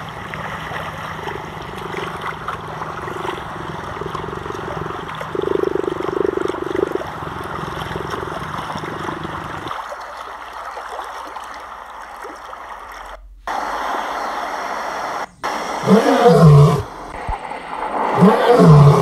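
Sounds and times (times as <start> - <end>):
lion roaring: 2.9 - 9.6, 15.8 - 17.0, 17.9 - 19.0.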